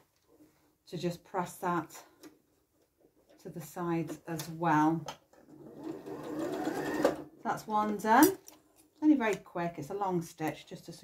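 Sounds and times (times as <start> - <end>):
sewing machine motor whirring: 5.5 - 7.3.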